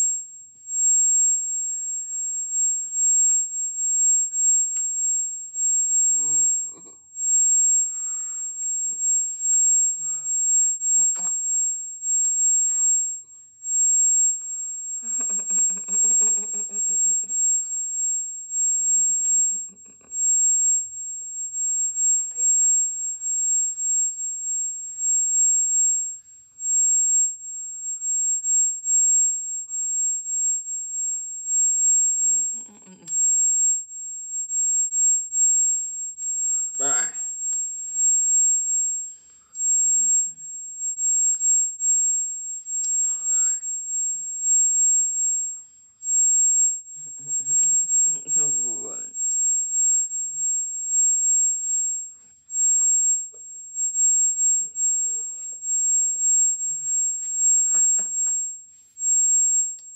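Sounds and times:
steady high-pitched tone: 0:00.0 - 0:59.9
people vocalising: 0:32.5 - 0:33.2.

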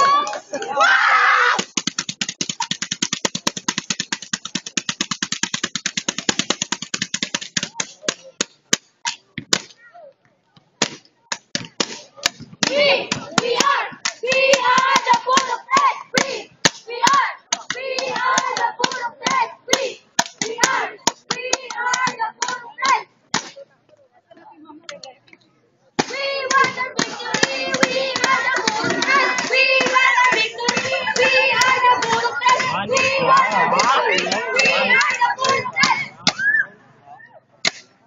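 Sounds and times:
sharp claps: 0:01.6 - 0:09.2, 0:10.8 - 0:23.6, 0:26.0 - 0:36.4
group shouting chant: 0:12.6 - 0:23.0, 0:26.1 - 0:36.1.

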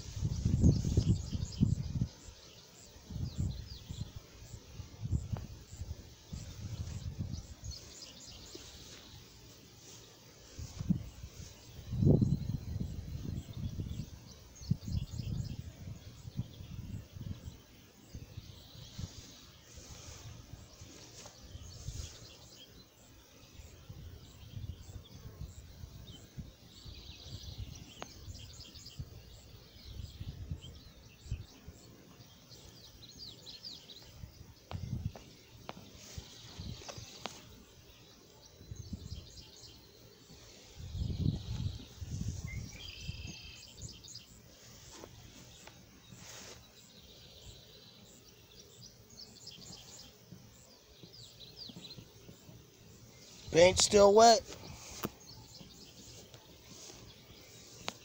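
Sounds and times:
birds chirping: 0:00.0 - 0:58.0
low rumbles on microphone: 0:40.8 - 0:43.4.

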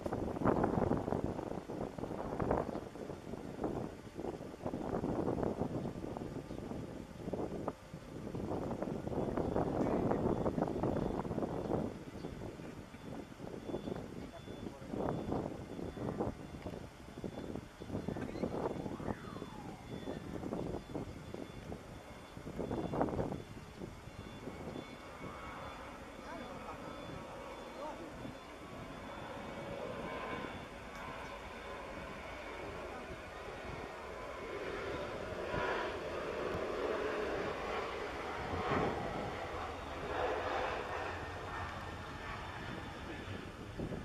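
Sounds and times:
jet engines at takeoff power: 0:00.0 - 0:44.0
voices: 0:14.0 - 0:16.8, 0:17.8 - 0:20.8, 0:26.1 - 0:29.7.

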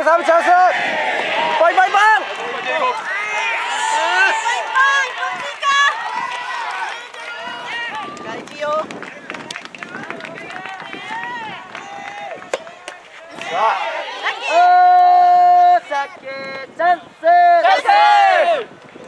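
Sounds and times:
spectators cheering: 0:00.0 - 0:15.6
rackets hitting rubber ball: 0:12.5 - 0:13.0.

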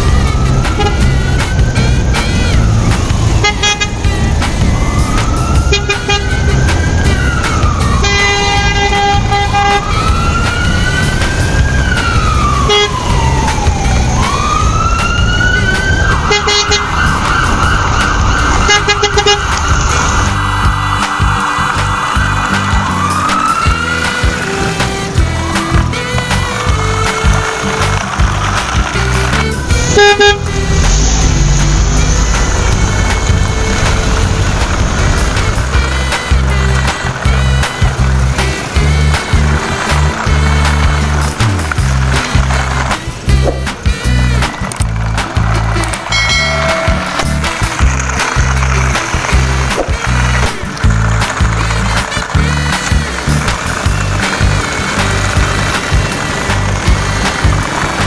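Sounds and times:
upbeat background music: 0:00.0 - 0:58.0
wailing siren: 0:00.0 - 0:58.0.

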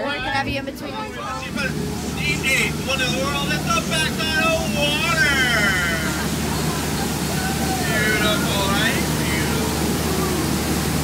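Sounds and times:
boat motor humming: 0:00.0 - 0:11.0
voices talking: 0:00.0 - 0:11.0.

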